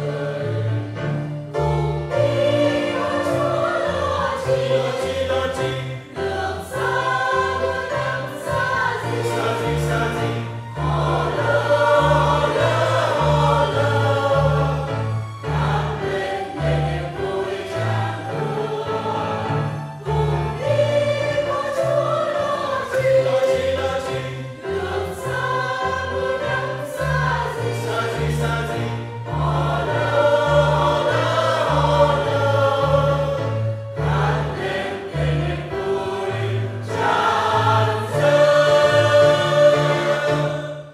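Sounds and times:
mixed choir singing a hymn: 0.0s - 40.9s
piano accompaniment: 0.0s - 40.9s.

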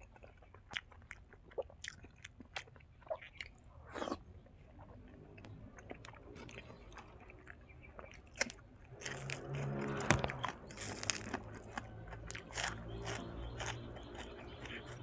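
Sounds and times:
person chewing crunchy food: 0.0s - 15.0s.

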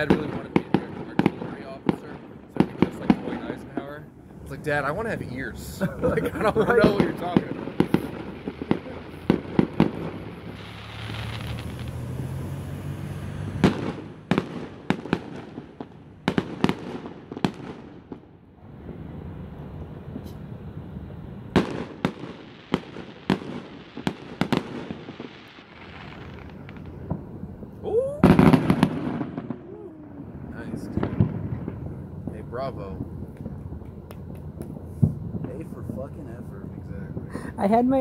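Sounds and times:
fireworks bangs and crackles: 0.0s - 38.0s.

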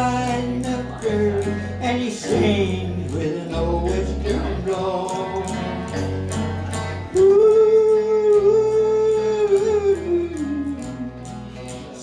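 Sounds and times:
country band playing: 0.0s - 12.0s
person singing: 0.0s - 12.0s.

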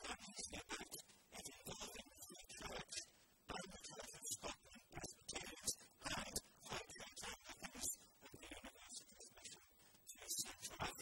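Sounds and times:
man lecturing into microphone: 0.0s - 11.0s.

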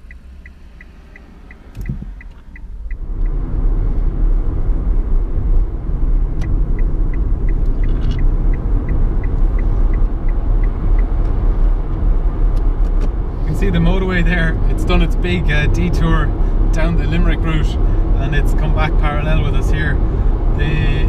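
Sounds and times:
turn signal ticking: 0.0s - 21.0s
tyre and road rumble: 0.0s - 21.0s.

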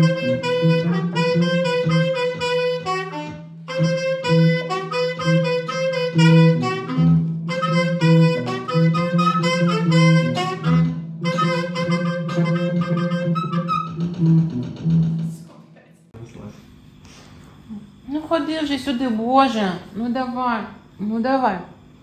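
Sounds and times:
small band jamming with saxophone: 0.0s - 15.3s.

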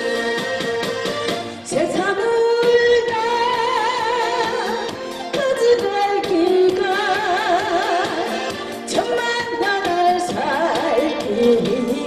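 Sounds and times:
amplified backing music with beat: 0.0s - 12.0s
woman singing into a microphone: 0.0s - 12.0s.

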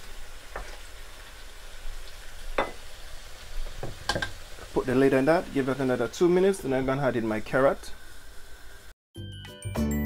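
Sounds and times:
curry sizzling in a wok: 0.0s - 8.9s.

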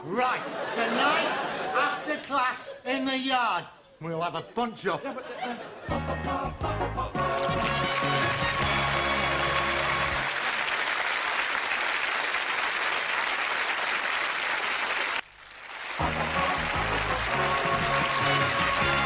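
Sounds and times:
sitcom theme music: 5.7s - 10.3s, 16.0s - 19.0s
studio audience applause: 7.2s - 19.0s.

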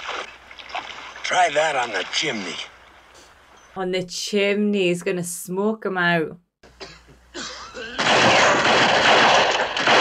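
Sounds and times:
rifle and revolver gunfire: 8.0s - 10.0s.

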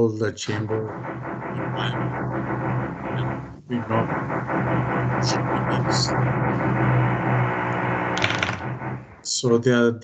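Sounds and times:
man talking over video call: 0.0s - 1.0s, 3.7s - 4.2s, 9.2s - 10.0s.

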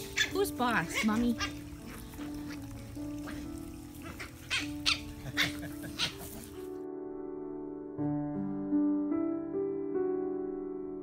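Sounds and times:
puppies yipping: 0.0s - 6.7s
background music: 0.0s - 11.0s.

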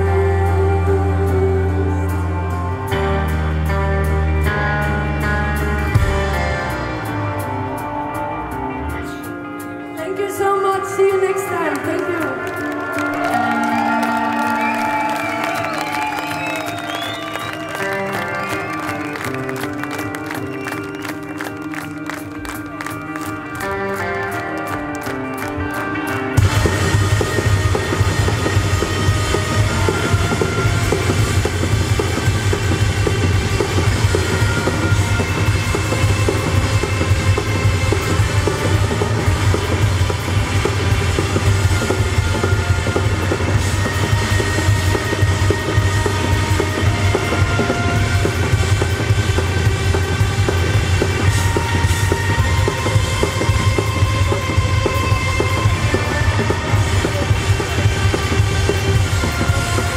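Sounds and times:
drum kit: 0.0s - 59.9s
live rock band playing: 0.0s - 59.9s.

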